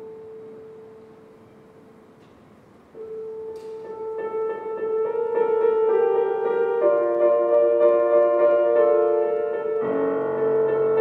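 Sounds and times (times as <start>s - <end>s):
grand piano note ringing: 0.0s - 11.0s.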